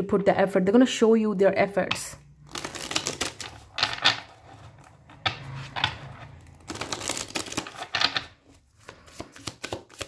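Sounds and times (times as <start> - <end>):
cards clicking and rustling: 2.5 - 4.4, 5.6 - 10.0.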